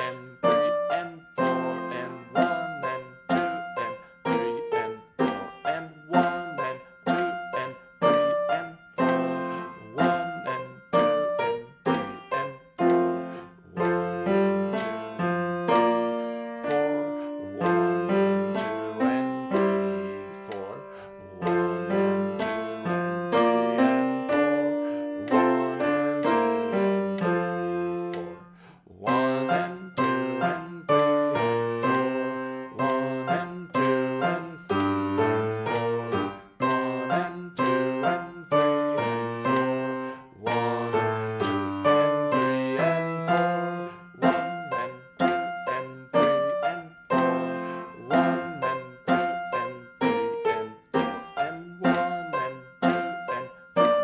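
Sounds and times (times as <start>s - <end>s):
grand piano playing: 0.0s - 54.0s
metronome ticking: 0.0s - 54.0s.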